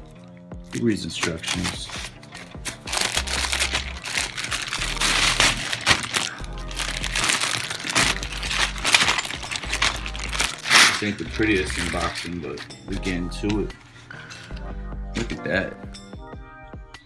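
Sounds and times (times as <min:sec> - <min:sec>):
background music with bass line: 0:00.0 - 0:17.0
plastic bag crinkling: 0:01.2 - 0:12.7.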